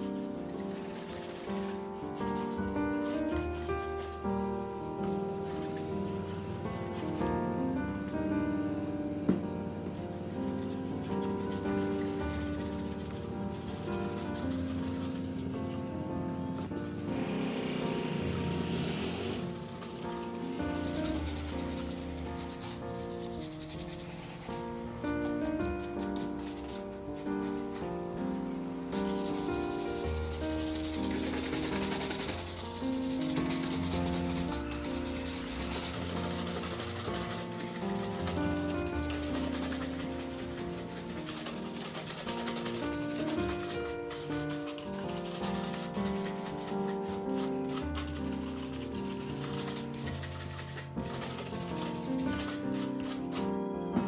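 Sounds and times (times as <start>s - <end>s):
brush rubbing shoe leather: 0.0s - 7.6s, 9.9s - 27.9s, 29.0s - 53.6s
soft background music: 0.0s - 54.0s.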